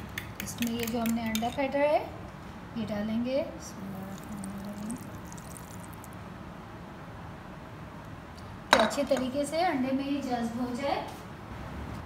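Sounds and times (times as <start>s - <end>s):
batter pouring: 3.8s - 6.2s.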